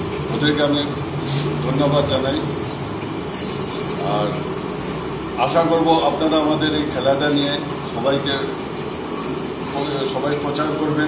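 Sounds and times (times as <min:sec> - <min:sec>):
steady background hiss: 0:00.0 - 0:11.0
man speaking: 0:01.6 - 0:02.6, 0:04.0 - 0:04.6, 0:05.4 - 0:08.6, 0:09.7 - 0:11.0.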